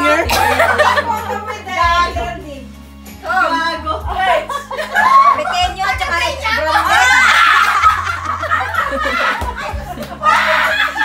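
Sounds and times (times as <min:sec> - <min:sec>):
women laughing loudly: 0:00.3 - 0:01.5, 0:04.4 - 0:05.8, 0:06.5 - 0:11.0.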